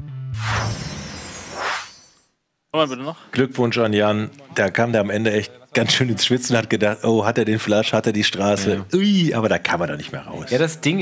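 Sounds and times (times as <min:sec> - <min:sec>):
man talking: 0:02.8 - 0:11.0.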